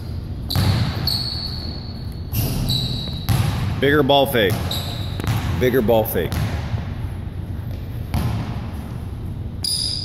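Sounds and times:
basketball bouncing on wooden floor: 0.5s - 1.1s, 3.0s - 3.8s, 4.4s - 5.6s, 6.2s - 6.8s, 8.1s - 8.6s.

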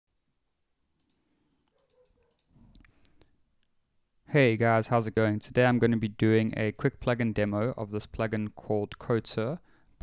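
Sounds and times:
sharp click: 1.0s - 2.9s
faint clicks: 1.0s - 3.7s.

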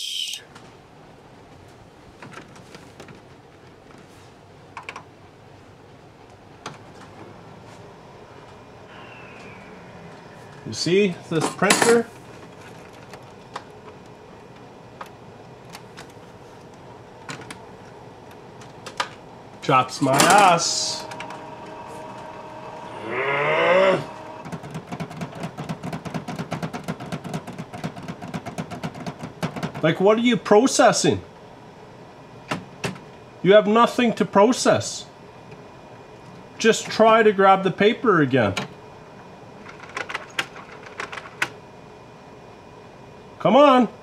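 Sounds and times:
printer whine: 0.0s - 0.4s, 7.2s - 28.3s
printer fast ticking: 20.0s - 23.0s
printer paper feed clicking: 20.0s - 23.0s, 23.9s - 29.9s
person groaning: 22.9s - 24.2s.

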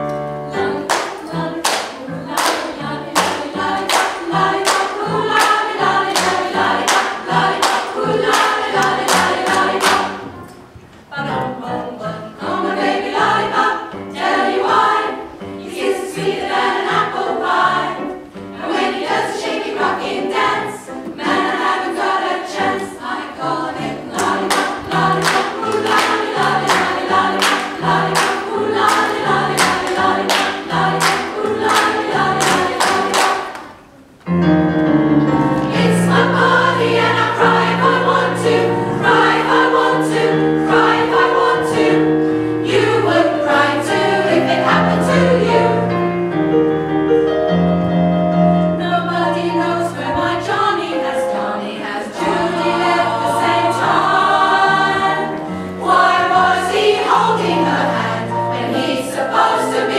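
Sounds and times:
women's choir singing: 0.0s - 34.0s, 35.5s - 46.4s, 48.4s - 59.9s.

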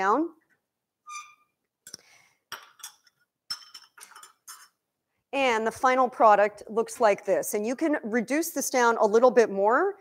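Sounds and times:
metal spoon clinking on dishes: 2.5s - 4.7s.

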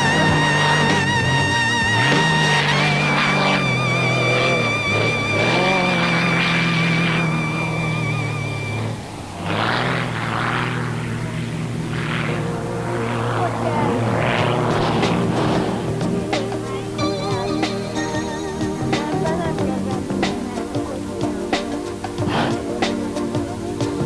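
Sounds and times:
background music: 0.0s - 24.0s
propeller plane engine: 0.0s - 24.0s.

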